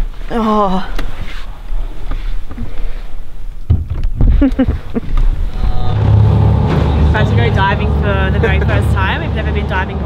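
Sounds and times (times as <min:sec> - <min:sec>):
low rumble: 0:04.4 - 0:10.0.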